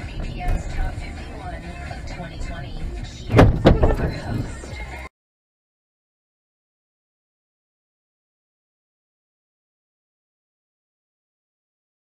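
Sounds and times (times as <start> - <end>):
car road and engine noise: 0.0 - 5.1
music: 0.0 - 5.1
loud thumps: 2.8 - 4.8.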